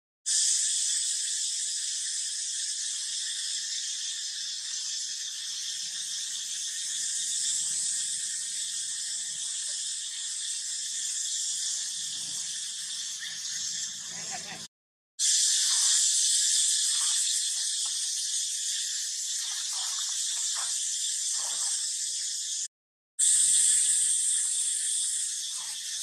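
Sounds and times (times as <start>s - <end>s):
insects buzzing: 0.3s - 14.6s, 15.2s - 26.0s.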